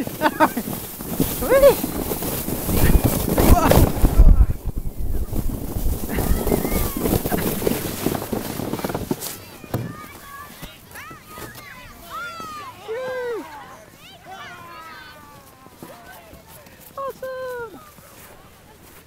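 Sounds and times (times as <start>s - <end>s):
voices calling out: 0.0s - 5.4s, 6.1s - 18.7s
wind on microphone: 0.0s - 9.2s
sled sliding on snow: 0.0s - 19.0s.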